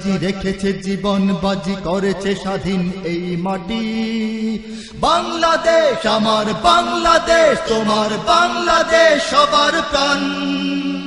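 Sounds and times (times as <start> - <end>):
solo voice singing: 1.8 - 11.0.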